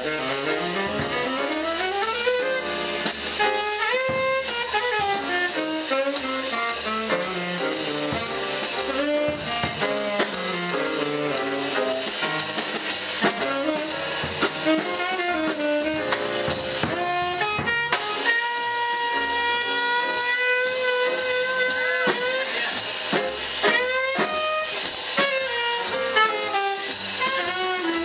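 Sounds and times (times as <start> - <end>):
upright bass: 0.0 - 18.4
tenor saxophone solo: 0.0 - 22.8, 23.6 - 28.0
drums with cymbals: 0.0 - 28.0
piano: 0.0 - 28.0.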